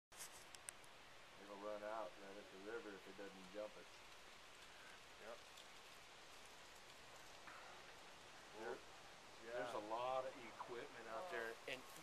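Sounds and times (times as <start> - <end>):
faint steady hiss: 0.1 - 12.0.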